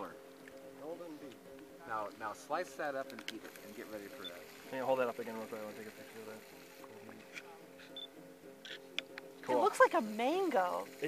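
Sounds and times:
soft background music: 0.0s - 11.0s
camera beep: 7.9s - 8.1s
camera shutter clicks: 8.6s - 9.2s.

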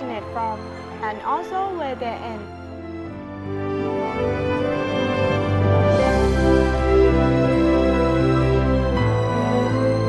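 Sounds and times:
sustained music chords: 2.4s - 10.0s.

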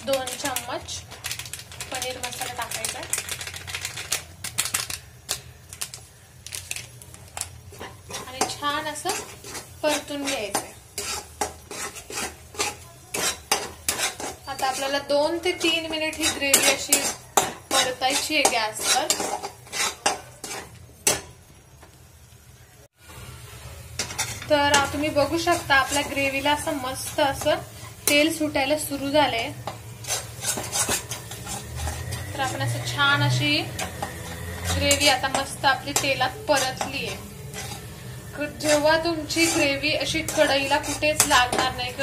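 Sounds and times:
spatula scraping metal pan: 7.7s - 21.2s, 24.0s - 28.4s, 29.6s - 42.0s.

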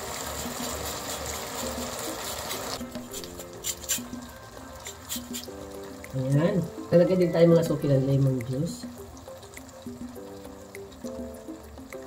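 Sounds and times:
sauce sizzling in a frying pan: 0.0s - 12.0s
soft background music: 0.0s - 12.0s
dripping lemon juice: 0.1s - 6.8s.

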